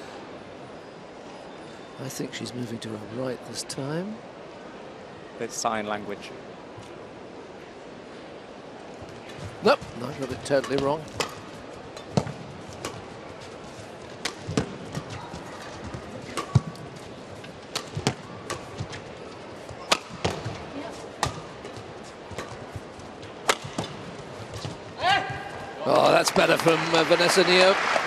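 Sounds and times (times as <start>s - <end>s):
low arena background: 0.0s - 28.0s
rackets striking shuttlecock: 10.2s - 13.1s, 14.2s - 15.2s, 16.3s - 16.8s, 17.6s - 19.0s, 19.7s - 20.6s, 23.3s - 24.8s.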